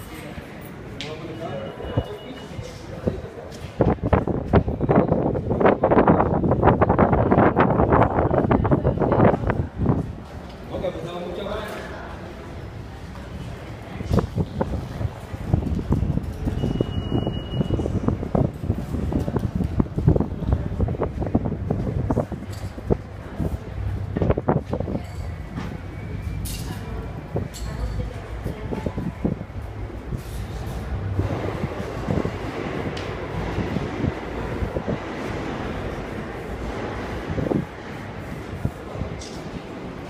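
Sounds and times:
wind rumble on microphone: 2.9s - 10.8s, 12.8s - 40.0s.

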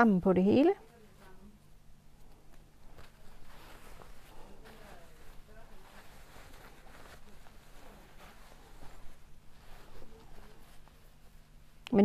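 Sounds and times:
rustling of knit fabric: 0.0s - 12.0s.

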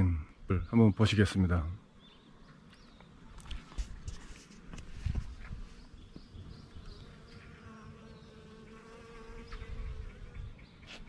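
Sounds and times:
bees buzzing: 5.7s - 10.8s.

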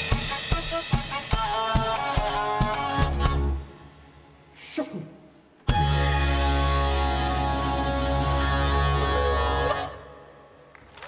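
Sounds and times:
solo live music held notes: 5.7s - 10.6s.

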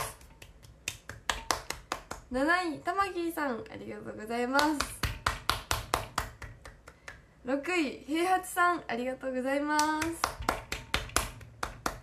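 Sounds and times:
person clapping hands: 0.0s - 2.3s, 4.6s - 7.3s, 9.8s - 12.0s.

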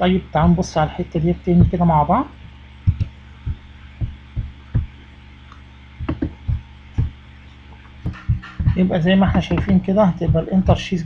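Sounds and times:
low mains hum: 0.0s - 11.0s
dull thumps of mouse clicks: 2.9s - 4.9s, 6.0s - 7.2s, 8.1s - 10.8s.

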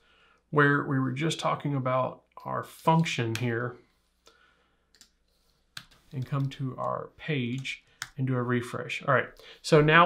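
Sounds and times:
keyboard and mouse clicks: 4.9s - 8.2s.

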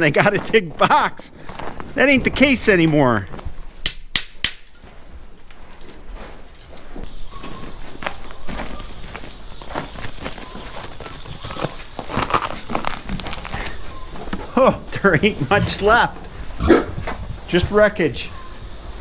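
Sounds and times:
footsteps: 0.0s - 17.8s
rubber hose rustling and clicking: 4.7s - 16.4s.

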